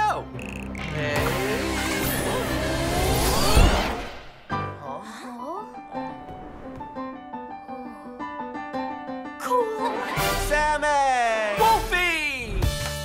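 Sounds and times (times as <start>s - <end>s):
rising swoops: 1.2s - 4.6s
swirling magic whoosh: 2.0s - 4.6s.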